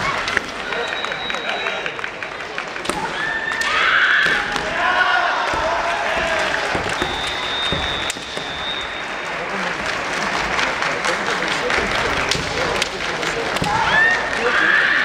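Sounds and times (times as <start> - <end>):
crowd murmur: 0.0 - 15.0
bamboo swords clacking: 2.6 - 4.8, 12.3 - 14.2
fencers shouting: 2.8 - 9.2, 13.4 - 15.0.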